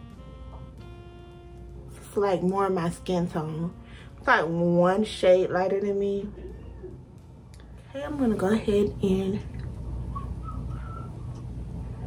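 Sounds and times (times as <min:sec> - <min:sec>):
steady low hum: 0:00.0 - 0:12.0
faint whistle-like notes: 0:10.0 - 0:12.0.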